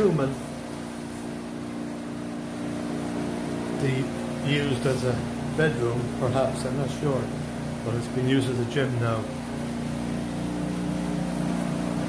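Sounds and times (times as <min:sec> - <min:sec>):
household appliance humming: 0:00.0 - 0:12.0.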